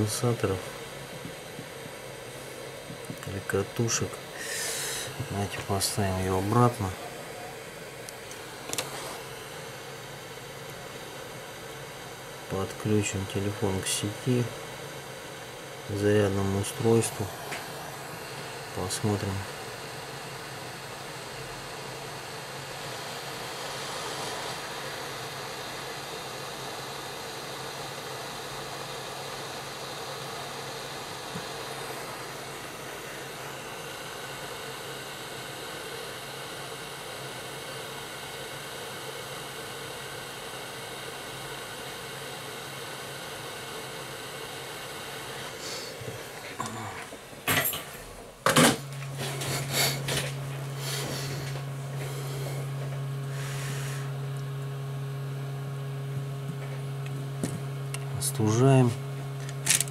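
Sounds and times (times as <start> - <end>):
fan whirring with low hum: 0.0 - 59.9.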